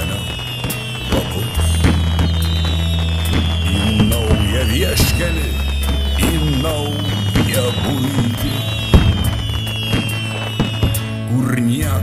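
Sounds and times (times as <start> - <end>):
background music: 0.0 - 12.0
fireworks bangs: 0.0 - 12.0.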